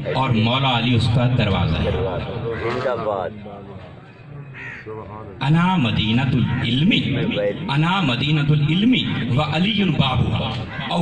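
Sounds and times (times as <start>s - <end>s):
man's amplified voice: 0.0s - 11.0s
crow cawing: 2.4s - 3.2s, 3.9s - 5.3s, 10.6s - 11.0s.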